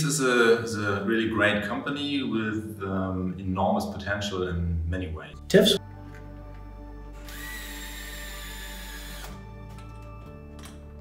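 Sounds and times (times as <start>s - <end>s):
electric screwdriver whine: 7.2s - 10.0s.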